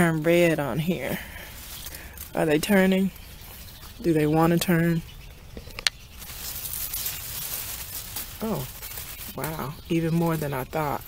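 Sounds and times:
wet leaves rustling against camera: 0:00.0 - 0:11.0.

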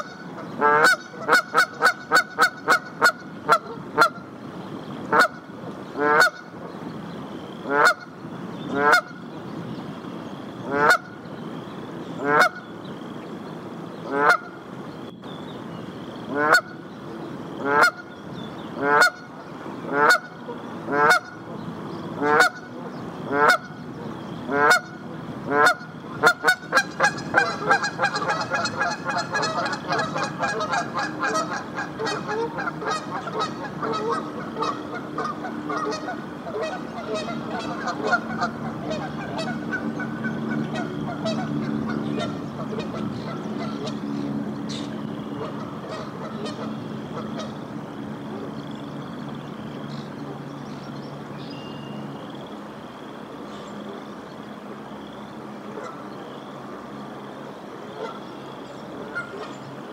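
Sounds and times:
goose honking: 0:00.0 - 0:04.2, 0:05.1 - 0:05.4, 0:06.0 - 0:06.5, 0:07.7 - 0:08.1, 0:10.7 - 0:11.1, 0:14.1 - 0:14.6, 0:16.3 - 0:16.8, 0:17.6 - 0:18.1, 0:18.8 - 0:19.3, 0:19.9 - 0:21.4, 0:22.2 - 0:22.7, 0:23.3 - 0:23.8, 0:24.5 - 0:44.0, 0:45.4 - 0:47.6, 0:59.1 - 0:59.5.

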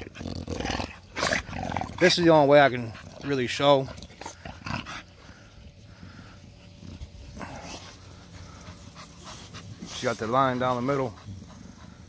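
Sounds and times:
dogs breathing and sniffing: 0:00.9 - 0:12.0.

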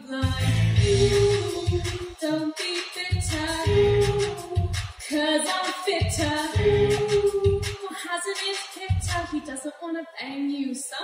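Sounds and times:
karaoke backing track with bass beat: 0:00.0 - 0:09.6
woman singing: 0:00.0 - 0:11.0.

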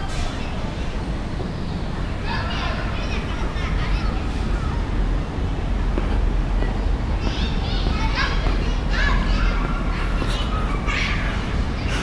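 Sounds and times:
children shouting at play: 0:02.2 - 0:05.0, 0:07.2 - 0:12.0.

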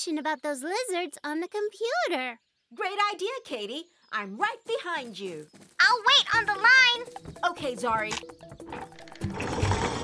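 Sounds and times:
cartoon background music: 0:05.8 - 0:10.0.

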